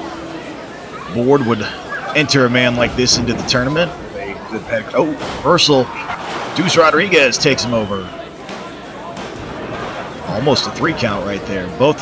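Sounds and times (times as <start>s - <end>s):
small crowd room noise: 0.0s - 12.0s.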